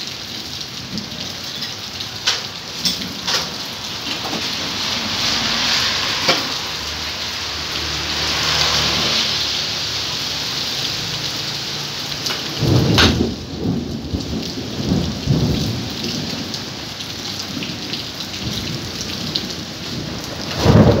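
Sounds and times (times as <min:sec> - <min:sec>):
steady rain falling: 0:00.0 - 0:21.0
thunder rumbling: 0:12.4 - 0:21.0.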